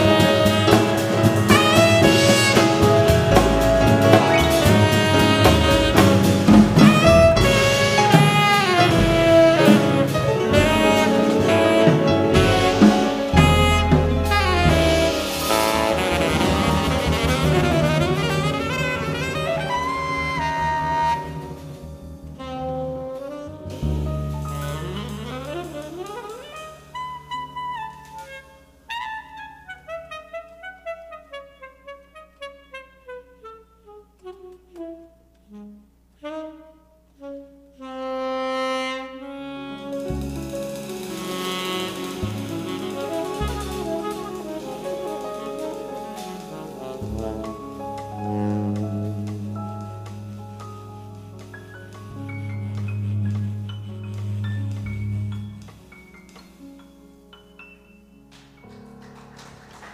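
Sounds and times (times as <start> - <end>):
tenor saxophone: 0.0 - 21.7, 22.4 - 56.4
drums and cymbals: 0.0 - 29.4, 39.0 - 57.0
bass: 0.0 - 59.9.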